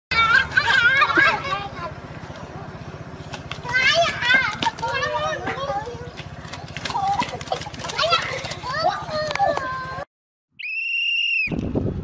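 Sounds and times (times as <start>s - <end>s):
children shouting: 0.1s - 2.0s, 3.5s - 10.0s.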